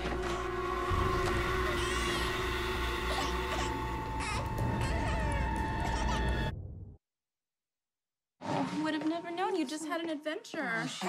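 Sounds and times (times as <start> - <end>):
dramatic music: 0.0 - 7.0
infant crying: 1.6 - 6.4.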